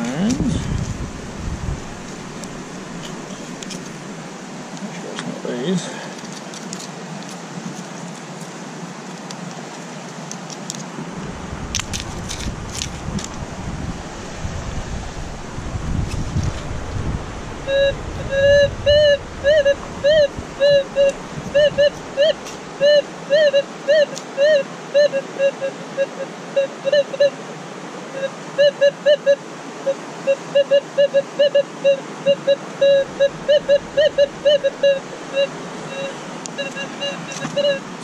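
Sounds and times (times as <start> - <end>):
river noise: 0.0 - 38.0
metal detector beeps: 30.3 - 37.8.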